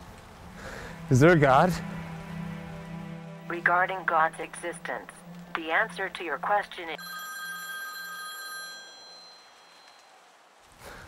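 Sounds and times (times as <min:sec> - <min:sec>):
phone voice speaking: 0:03.5 - 0:07.0
electronic bell-like ringing tone: 0:07.0 - 0:10.0.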